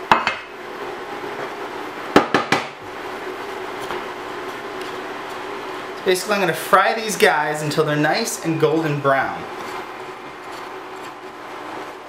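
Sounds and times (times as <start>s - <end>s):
cookware knock: 2.2s - 2.7s.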